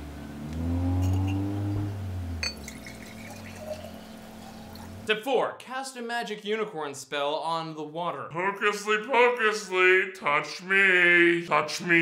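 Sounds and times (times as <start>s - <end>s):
water pouring into glass jar: 2.4s - 5.0s.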